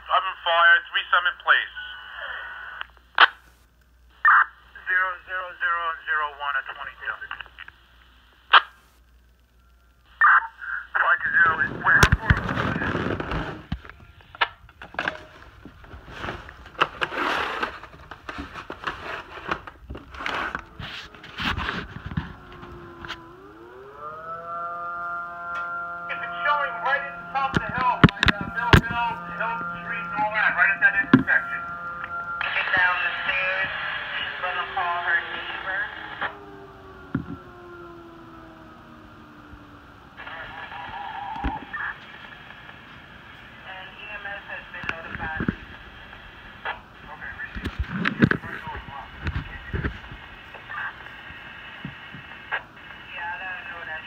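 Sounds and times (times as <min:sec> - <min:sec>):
radio pager dispatch: 0:04.2 - 0:08.9, 0:09.6 - 0:54.0
clicks and handling noise: 0:11.9 - 0:23.6, 0:27.4 - 0:30.2
fire siren wailing: 0:17.7 - 0:44.3.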